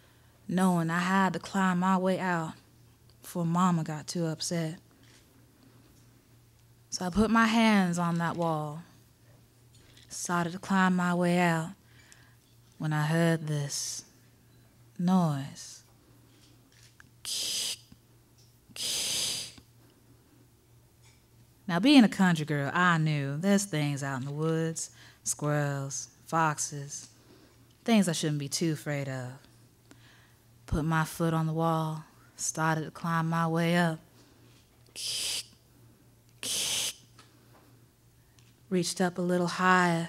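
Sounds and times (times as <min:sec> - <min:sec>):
person hissing into microphone: 0:17.2 - 0:17.9, 0:18.8 - 0:19.6, 0:35.0 - 0:35.6, 0:36.4 - 0:37.1.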